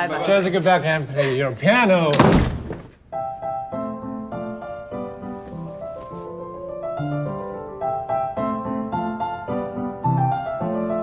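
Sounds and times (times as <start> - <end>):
door shutting with heavy thud: 2.1 - 3.0
piano music: 3.0 - 11.0.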